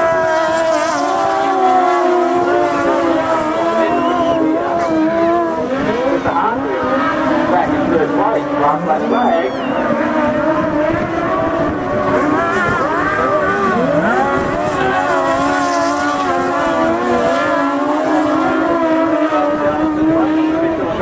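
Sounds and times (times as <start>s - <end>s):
racing engines revving: 0.0s - 21.0s.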